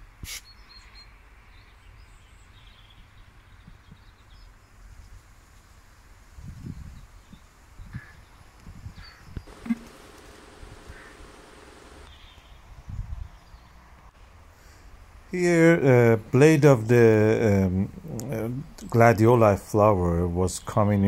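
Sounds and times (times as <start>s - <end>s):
faint bird chirps: 9.0s - 12.6s
faint steady hum: 9.5s - 12.1s.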